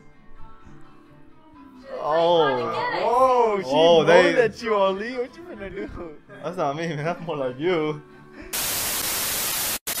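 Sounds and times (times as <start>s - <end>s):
television static hiss: 8.6s - 10.0s.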